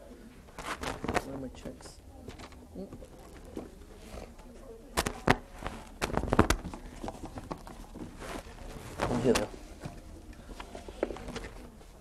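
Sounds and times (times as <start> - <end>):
papers and boards rustling: 0.4 - 12.0.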